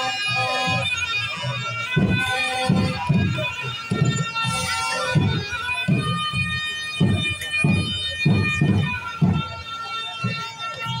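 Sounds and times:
wind instruments holding high notes: 0:00.0 - 0:11.0
low drum beats: 0:01.9 - 0:10.8.

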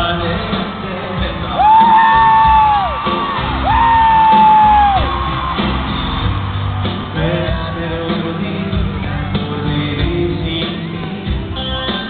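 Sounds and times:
live band music: 0:00.0 - 0:12.0
high sliding whoops: 0:01.6 - 0:05.7.

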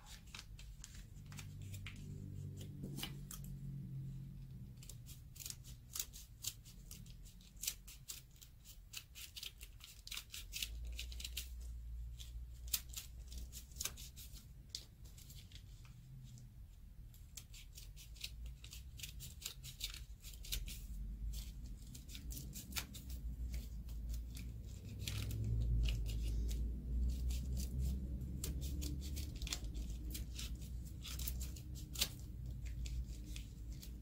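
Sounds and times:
low rumble: 0:01.1 - 0:05.0
scissors snipping paper: 0:04.8 - 0:15.6, 0:17.1 - 0:34.0.

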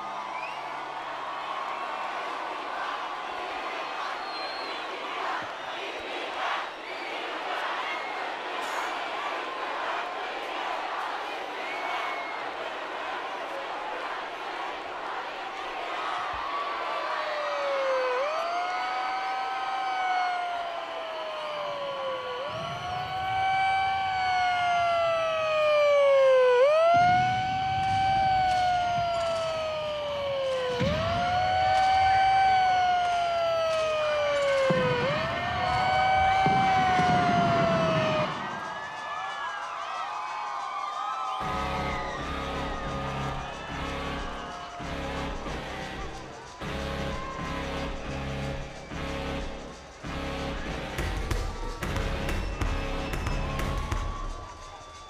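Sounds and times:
siren wailing: 0:16.4 - 0:39.6, 0:41.4 - 0:55.0.

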